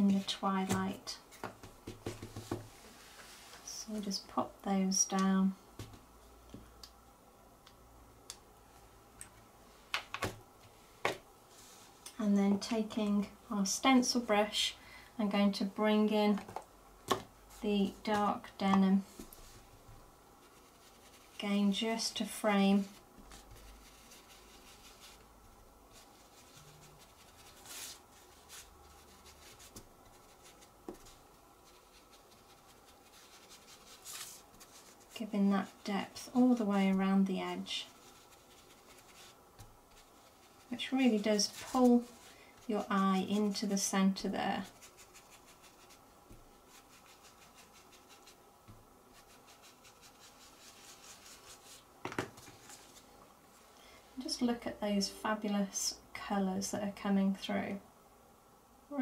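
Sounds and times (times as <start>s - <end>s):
stencil brush rubbing on cardstock: 20.3s - 25.3s, 25.9s - 48.5s, 49.1s - 53.1s.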